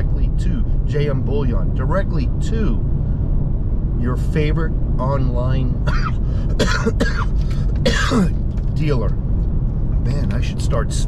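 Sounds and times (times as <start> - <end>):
road rumble inside car: 0.0 - 11.0
man coughing: 5.8 - 8.4.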